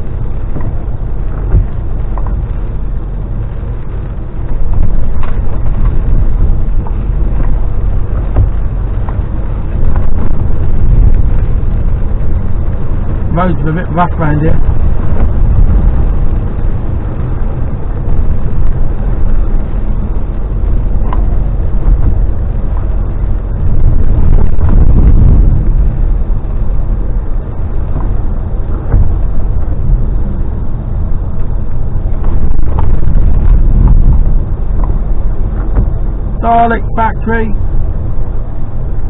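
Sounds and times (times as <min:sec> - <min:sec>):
lorry engine rumble: 0:00.0 - 0:39.0
tyre noise on rough road: 0:00.0 - 0:39.0.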